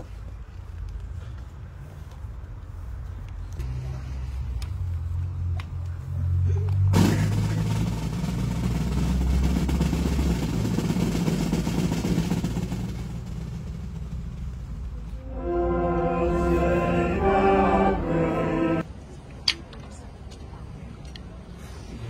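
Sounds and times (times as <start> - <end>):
low engine-like rumble: 0.0 - 18.9.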